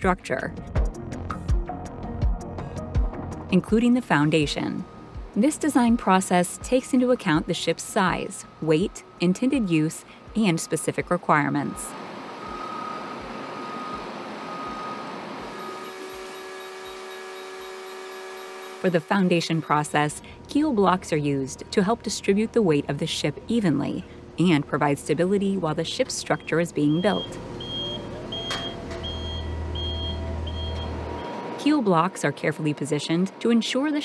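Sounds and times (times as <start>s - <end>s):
vehicle reversing beeper: 8.2s - 17.5s, 26.3s - 31.6s
shipyard background noise: 18.8s - 34.0s
steady low hum: 18.8s - 34.0s
electronic warning beeper: 26.3s - 31.6s.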